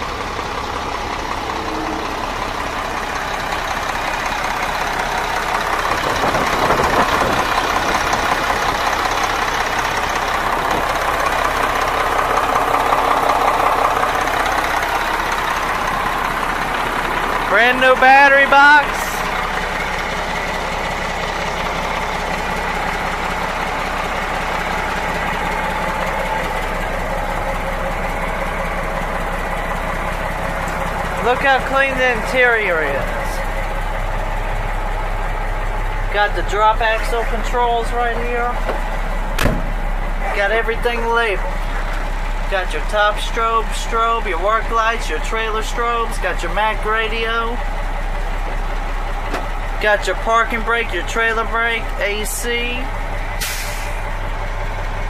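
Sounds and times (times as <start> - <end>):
diesel truck engine idling: 0.0 - 55.0.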